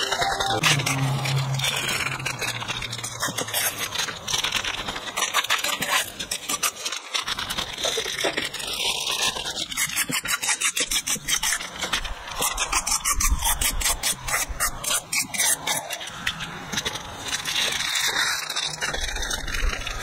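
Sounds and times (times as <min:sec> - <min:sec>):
plastic bag rustling: 0:00.0 - 0:09.0
fingers scraping a bowl: 0:00.0 - 0:16.4.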